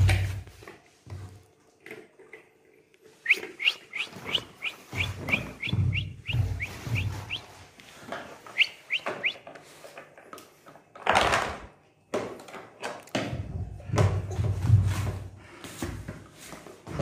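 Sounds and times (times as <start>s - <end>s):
squeaky shoes squeaking: 3.2s - 7.5s, 8.5s - 9.4s.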